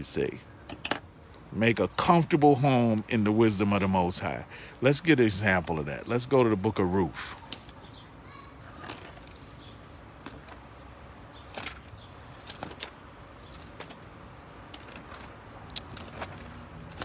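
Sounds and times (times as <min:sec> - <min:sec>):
thin pages flicking and rustling: 0:08.7 - 0:10.8, 0:11.4 - 0:17.0.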